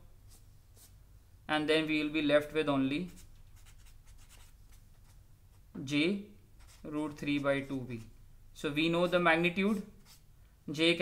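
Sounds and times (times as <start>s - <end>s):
marker scratching on paper: 0.3s - 1.0s, 3.0s - 5.7s, 6.6s - 8.1s, 9.6s - 10.3s.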